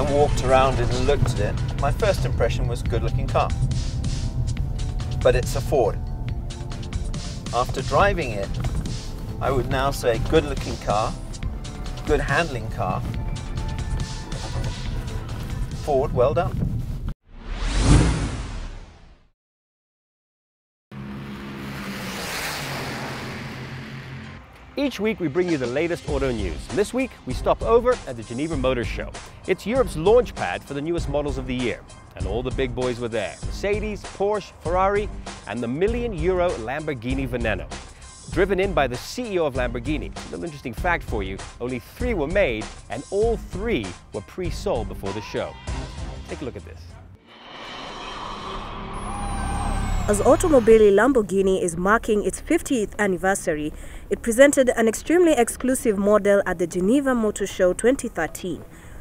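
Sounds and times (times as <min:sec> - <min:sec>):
steady low engine hum: 0:00.0 - 0:16.0
car passing by: 0:21.0 - 0:26.2, 0:47.2 - 0:51.1.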